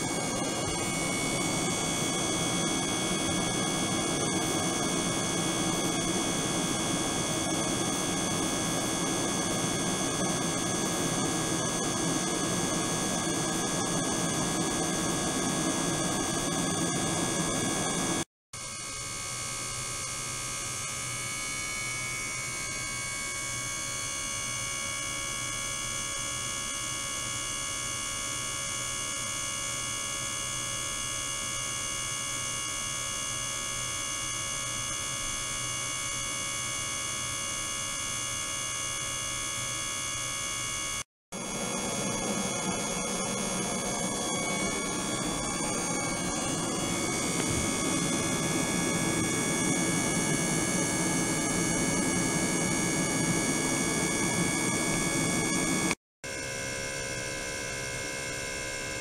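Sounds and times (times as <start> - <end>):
steady electronic hum: 0.0 - 18.2, 41.4 - 55.9
steady high tones: 41.4 - 50.6.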